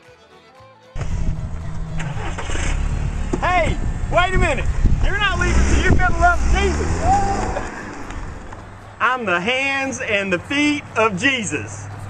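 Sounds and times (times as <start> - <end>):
wind rumbling on microphone: 1.0 - 8.8
car engine running: 1.0 - 9.0.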